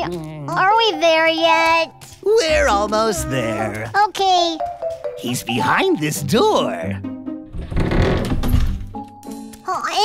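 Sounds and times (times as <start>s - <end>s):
soft background music: 0.0s - 10.0s
cartoon door creaking: 7.5s - 8.9s.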